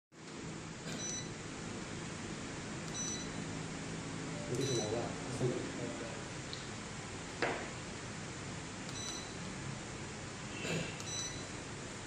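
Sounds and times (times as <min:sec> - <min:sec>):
background hiss and hum: 0:00.2 - 0:12.0
short high electronic beeps: 0:00.9 - 0:01.3, 0:02.9 - 0:03.4, 0:08.9 - 0:09.4, 0:11.0 - 0:11.5.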